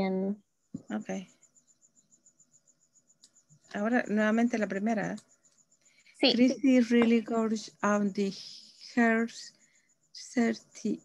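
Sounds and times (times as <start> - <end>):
cricket chirping: 0.0 - 11.0
person speaking: 6.2 - 7.6.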